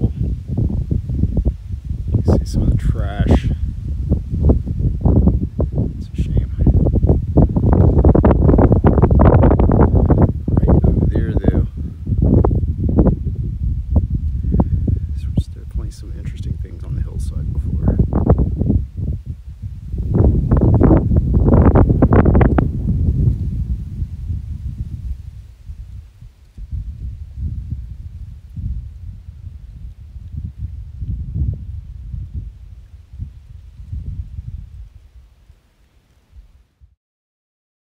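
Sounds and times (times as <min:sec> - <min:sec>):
wind buffeting microphone: 0:00.0 - 0:35.6.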